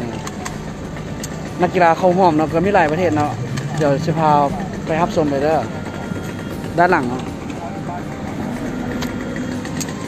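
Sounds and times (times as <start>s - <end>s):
engine rumble: 0.0s - 10.0s
man talking: 6.8s - 8.6s.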